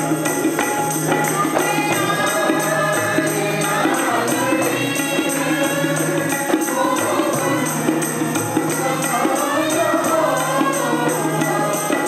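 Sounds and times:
harmonium low held tone: 0.0 - 12.0
tambourine beat: 0.0 - 12.0
group singing a hymn: 1.3 - 12.0.

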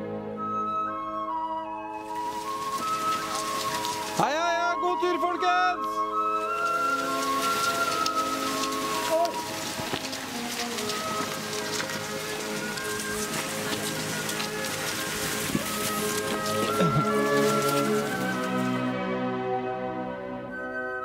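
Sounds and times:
background music: 0.0 - 21.0
skis sliding on snow: 2.0 - 19.0
ski poles planting: 2.0 - 19.2.

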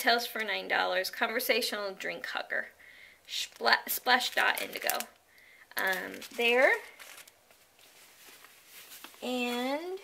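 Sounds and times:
hands rummaging in fabric bag: 5.8 - 9.8.

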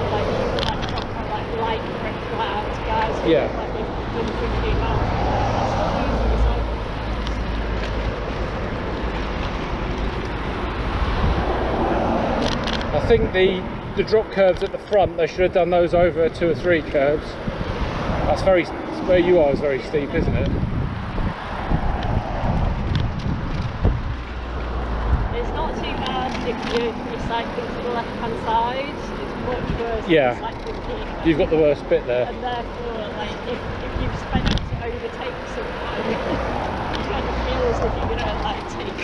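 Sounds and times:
wind rumble on microphone: 0.0 - 27.7, 28.6 - 31.5, 32.6 - 39.0
road noise: 0.0 - 39.0.

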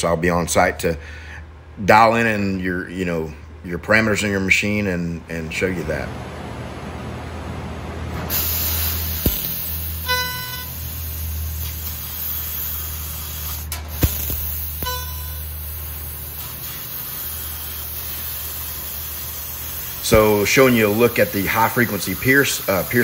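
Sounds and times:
low machine hum: 0.0 - 23.0
hiss of cutting jet: 8.3 - 23.0
sharp pops: 8.4 - 10.0, 13.4 - 15.3, 20.1 - 20.8
short beeps: 10.0 - 10.8, 14.8 - 15.5.

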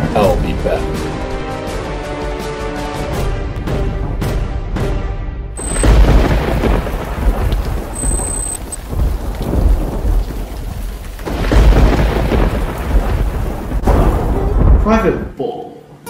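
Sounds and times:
steady rain: 5.6 - 15.2
rolling thunder: 5.6 - 15.3.

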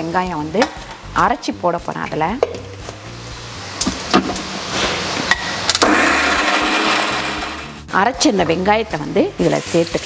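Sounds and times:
mixer grinder whirring: 5.8 - 7.8.

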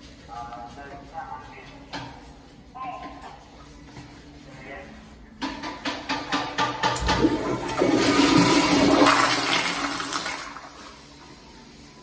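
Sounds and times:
toilet flushing: 6.8 - 11.5.

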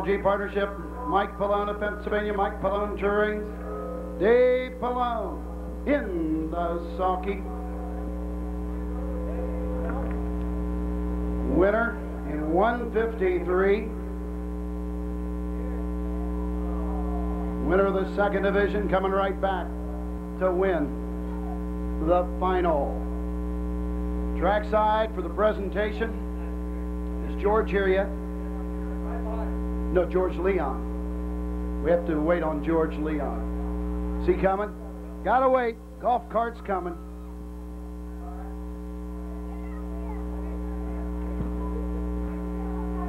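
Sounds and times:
distant voices: 0.0 - 14.2, 32.9 - 43.0
electrical hum: 0.0 - 43.0.

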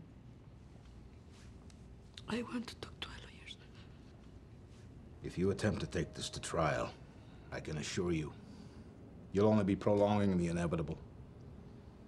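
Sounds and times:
faint low hum: 0.0 - 12.0
woman whispering: 2.2 - 4.0.

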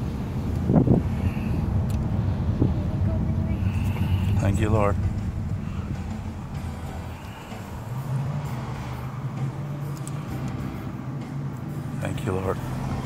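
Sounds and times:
car engine and road hum: 0.0 - 13.0.

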